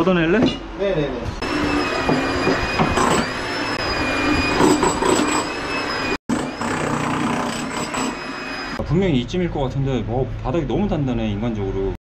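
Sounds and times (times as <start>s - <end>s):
high whine: 1.3s - 6.8s
power tool breaking concrete: 6.3s - 8.2s.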